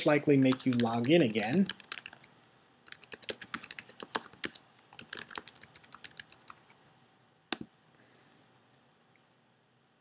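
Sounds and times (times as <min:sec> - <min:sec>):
typing on computer keyboard: 0:00.4 - 0:02.3, 0:02.9 - 0:06.6.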